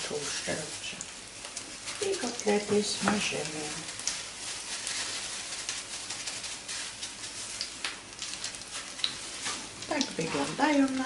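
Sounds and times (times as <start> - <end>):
patties sizzling in a frying pan: 0.0 - 11.0.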